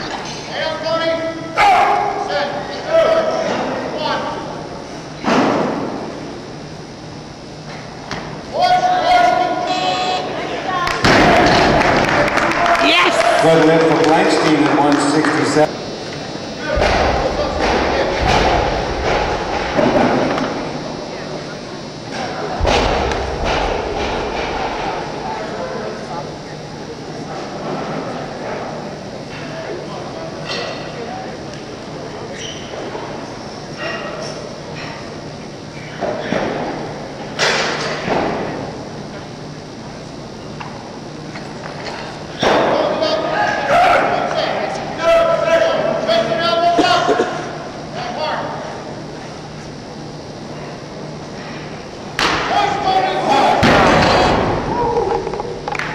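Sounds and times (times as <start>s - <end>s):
crowd voices echoing in hall: 0.0s - 55.9s.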